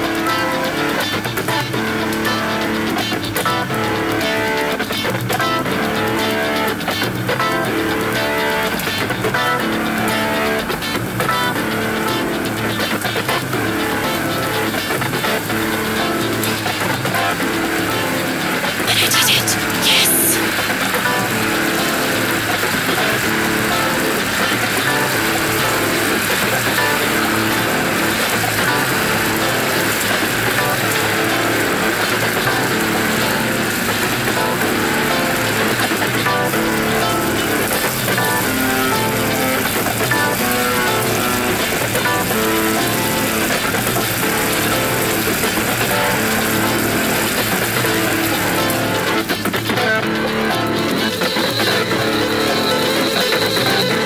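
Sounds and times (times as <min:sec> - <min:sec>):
rock band playing a riff: 0:00.0 - 0:54.0
loud hissing noise burst: 0:18.7 - 0:48.9.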